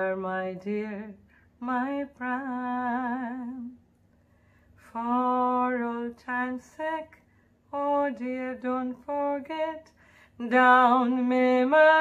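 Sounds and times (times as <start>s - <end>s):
woman singing unaccompanied: 0.0s - 3.8s, 4.8s - 12.0s
woman taking a breath: 4.2s - 4.8s, 10.0s - 10.4s.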